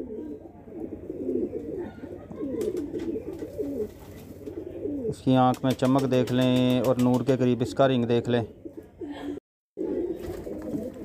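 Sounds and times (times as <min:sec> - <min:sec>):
pigeons cooing: 0:00.0 - 0:07.0, 0:08.0 - 0:11.0.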